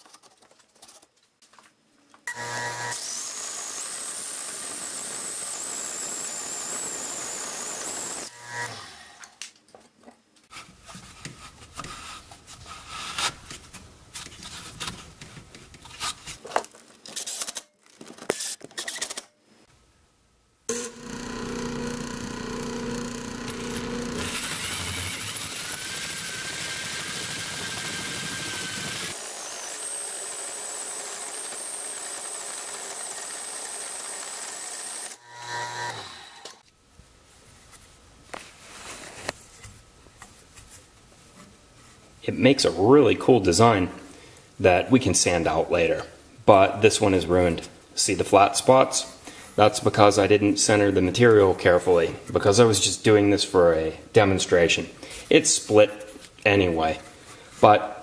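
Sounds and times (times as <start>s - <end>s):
lathe machine whine: 20.7s - 29.8s.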